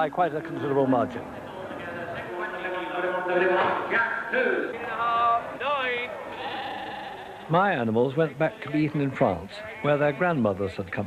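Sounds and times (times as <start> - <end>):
sheep bleating: 6.2 - 7.7, 9.6 - 10.4.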